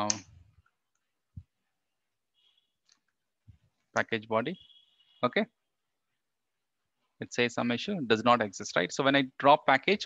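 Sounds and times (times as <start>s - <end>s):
keyboard and mouse clicks: 0.0s - 1.1s.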